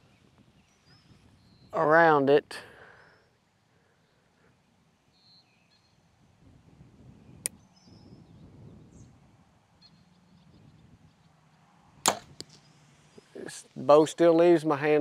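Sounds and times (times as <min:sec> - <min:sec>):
bow firing: 0:12.0 - 0:12.6
sharp click: 0:12.1 - 0:12.6.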